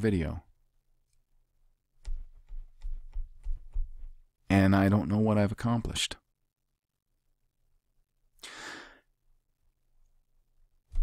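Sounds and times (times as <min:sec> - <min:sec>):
person sighing: 0:08.4 - 0:09.1.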